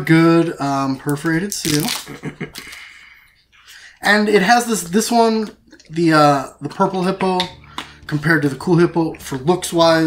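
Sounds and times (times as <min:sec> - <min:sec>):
person laughing: 0:01.7 - 0:02.9.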